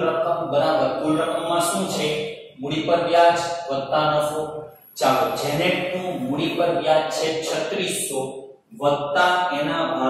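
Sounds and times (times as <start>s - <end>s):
man talking slowly: 0.0s - 10.0s.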